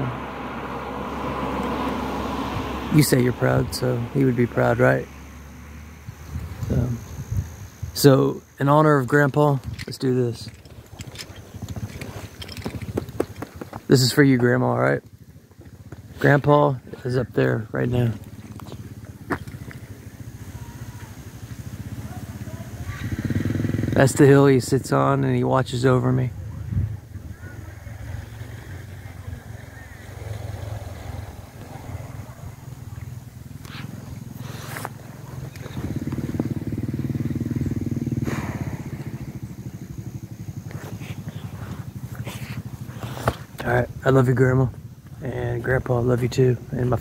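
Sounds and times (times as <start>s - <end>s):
motorbike engine idling: 0.0s - 47.0s.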